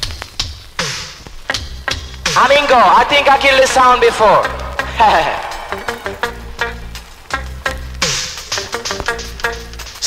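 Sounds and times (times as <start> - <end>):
reggae dub over sound system: 0.0 - 10.0
falling pitch sweep: 4.5 - 8.0.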